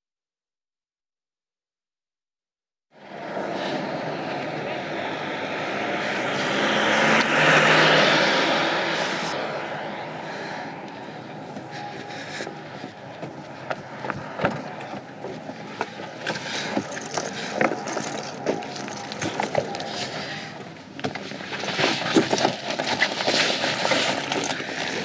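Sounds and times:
vehicle driving past: 3.0 - 20.5.

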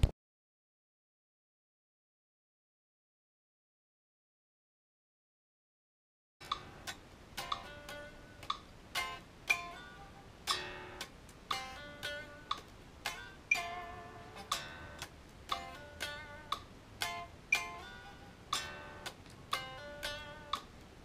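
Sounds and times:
electric guitar blues rock riff: 6.4 - 20.8
metronome clicking: 6.4 - 20.9.

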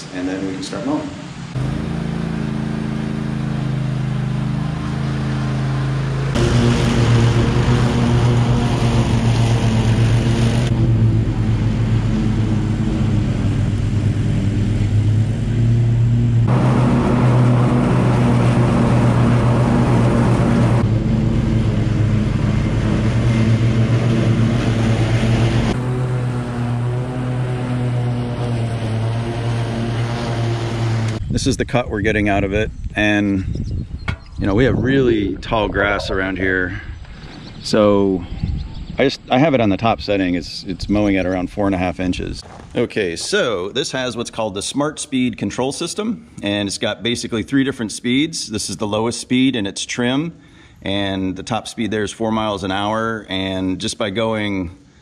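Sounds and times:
riding mower engine mowing: 0.0 - 31.4.

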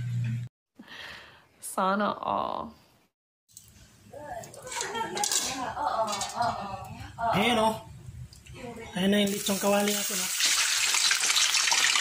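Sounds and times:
metal cookware clinking: 4.4 - 6.5.

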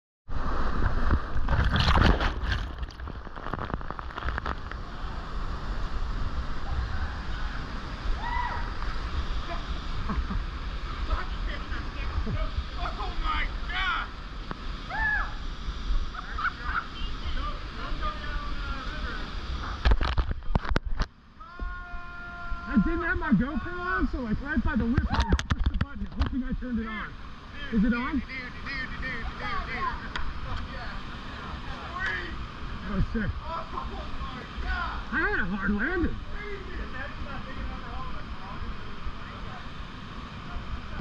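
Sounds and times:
churning river noise: 0.3 - 41.0
heavy water splashing: 0.3 - 41.0.

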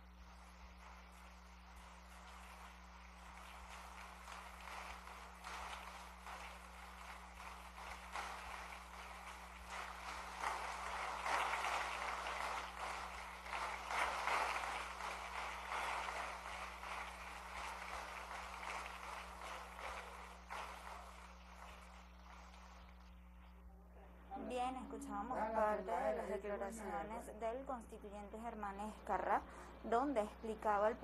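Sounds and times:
crowd applauding: 0.0 - 23.5.

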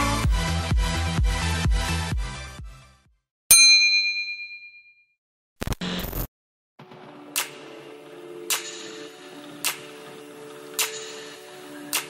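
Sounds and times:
bright bell-like ding: 3.5 - 5.1.

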